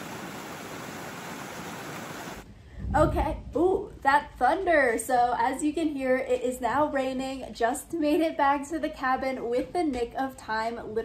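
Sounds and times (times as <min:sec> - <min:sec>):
water falling over rocks: 0:00.0 - 0:02.4.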